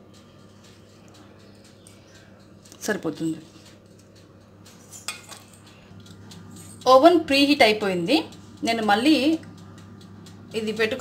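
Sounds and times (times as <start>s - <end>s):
woman speaking: 2.7s - 3.5s, 6.8s - 9.5s, 10.5s - 11.0s.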